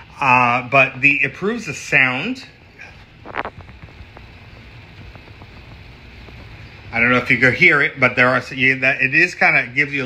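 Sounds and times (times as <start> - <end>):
air conditioner hiss: 0.0 - 10.0
aquarium air stone bubbling: 2.6 - 8.2.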